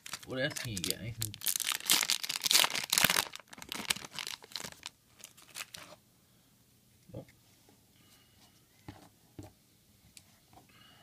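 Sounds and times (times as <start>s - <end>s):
foil wrapper crinkling and tearing: 0.0s - 5.9s.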